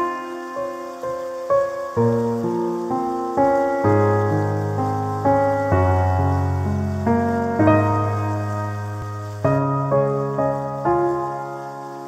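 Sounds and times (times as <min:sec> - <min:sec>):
gentle solo piano: 0:00.0 - 0:12.0
rain hiss: 0:00.0 - 0:12.0.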